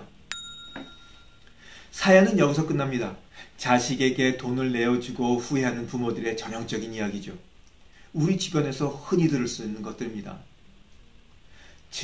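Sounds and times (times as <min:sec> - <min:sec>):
bright bell ding: 0:00.3 - 0:01.5.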